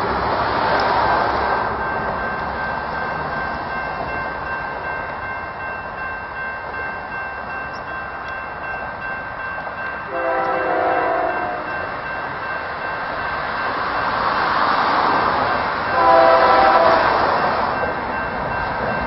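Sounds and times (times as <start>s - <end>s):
freight train rumbling past: 0.0s - 19.0s
locomotive horn blast: 10.1s - 11.8s, 15.9s - 17.2s.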